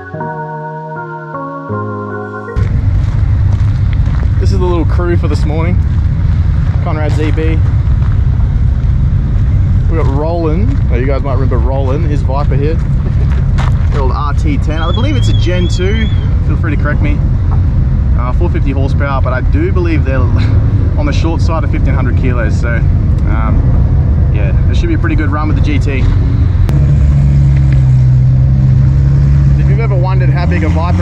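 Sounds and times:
car engine idling: 0:02.6 - 0:23.5
people talking: 0:04.4 - 0:05.8, 0:06.8 - 0:07.6, 0:09.9 - 0:12.8, 0:13.9 - 0:17.2, 0:18.2 - 0:23.7, 0:24.3 - 0:26.2, 0:29.6 - 0:31.0.

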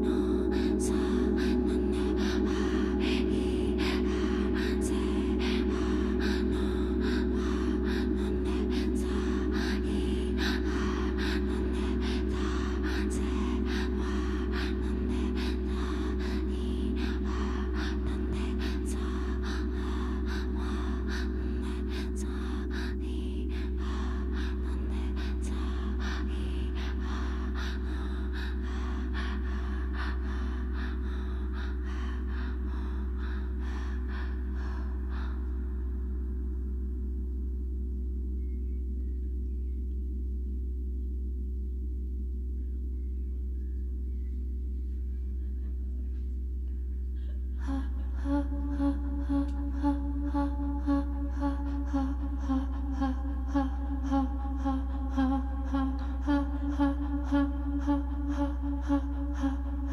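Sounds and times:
ambient drone music: 0:00.0 - 0:59.9.

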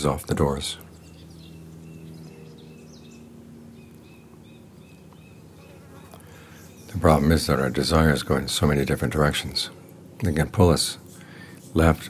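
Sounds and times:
flying insect buzzing: 0:01.0 - 0:08.1.

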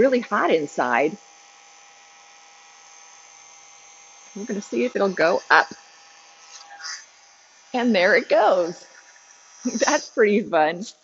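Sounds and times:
heat gun humming: 0:00.0 - 0:11.0.

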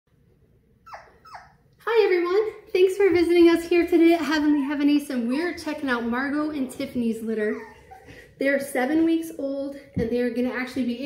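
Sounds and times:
puppy yipping: 0:00.8 - 0:01.7, 0:07.5 - 0:08.2
woman speaking: 0:01.8 - 0:11.0.

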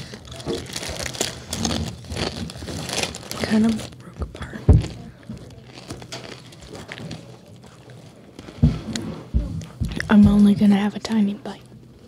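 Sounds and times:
biscuit chewing: 0:00.0 - 0:09.0
biscuit crunching: 0:00.0 - 0:10.0.

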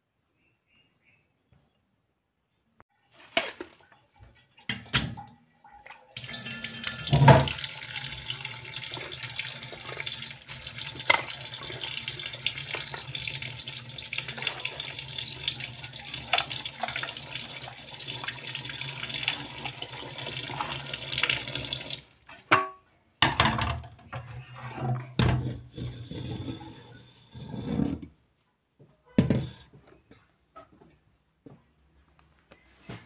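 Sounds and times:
tap water running into steel bowl: 0:03.8 - 0:22.2.

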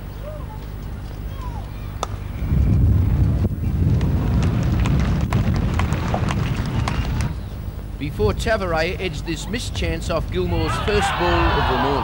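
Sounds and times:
wind buffeting microphone: 0:02.2 - 0:09.1.

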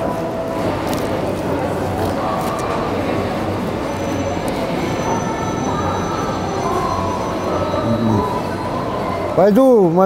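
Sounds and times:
restaurant room noise: 0:00.0 - 0:10.0
indistinct voices: 0:02.1 - 0:09.5.

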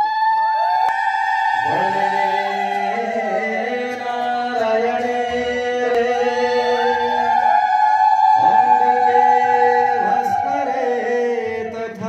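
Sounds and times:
voices chanting a held note: 0:00.6 - 0:11.6.

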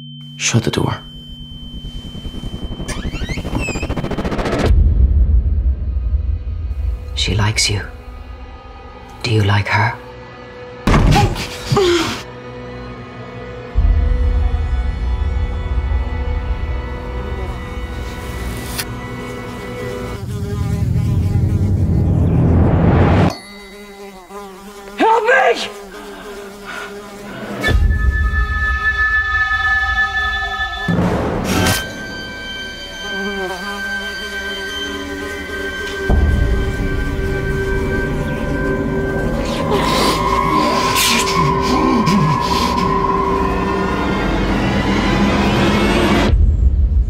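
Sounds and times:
high whine: 0:00.0 - 0:09.2, 0:27.6 - 0:47.0
steady buzzing drone: 0:00.3 - 0:04.8, 0:12.4 - 0:23.0, 0:32.0 - 0:46.0
low pulses: 0:01.0 - 0:09.2
deep low rumble: 0:01.1 - 0:09.2.

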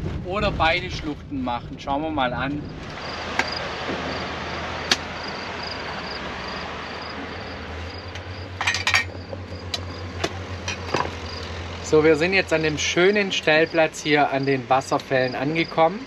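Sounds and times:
low hum: 0:00.0 - 0:13.4
insect chirping in pulses: 0:02.6 - 0:16.0.

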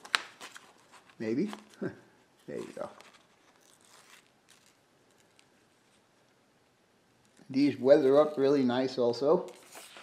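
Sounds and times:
paper rustling: 0:00.0 - 0:06.0, 0:09.4 - 0:10.0.

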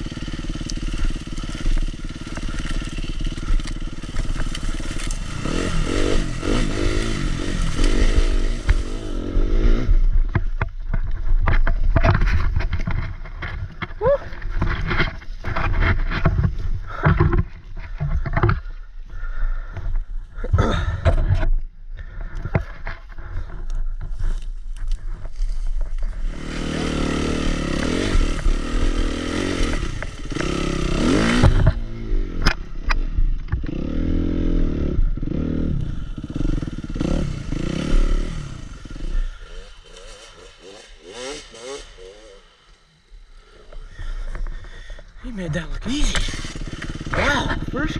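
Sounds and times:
dirt bike engine revving: 0:00.0 - 0:10.6, 0:25.0 - 0:47.9
branches scraping against bike: 0:00.0 - 0:47.9.

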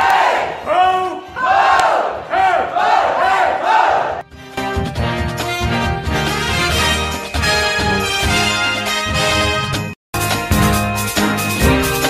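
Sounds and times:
group shouting a rhythmic chant: 0:00.0 - 0:04.2.

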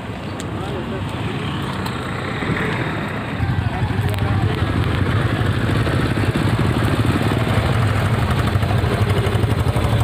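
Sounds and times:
vehicle engines in traffic: 0:00.0 - 0:10.0.

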